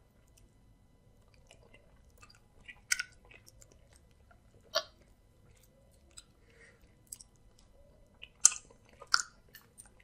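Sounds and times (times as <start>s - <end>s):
close chewing: 1.2s - 10.0s
wet mouth smacks: 1.4s - 4.0s, 7.1s - 10.0s.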